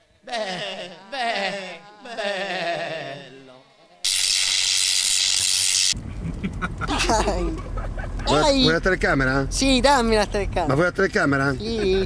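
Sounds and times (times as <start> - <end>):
high-pitched static hiss: 4.0 - 6.0.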